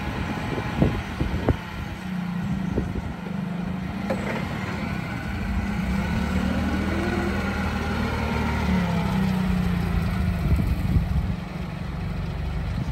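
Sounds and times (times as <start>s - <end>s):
forklift engine running: 0.0s - 12.9s.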